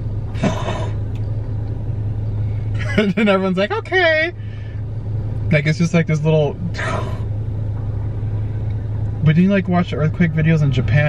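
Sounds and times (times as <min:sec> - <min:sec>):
car engine idling: 0:00.0 - 0:11.0
person sighing: 0:00.4 - 0:01.0.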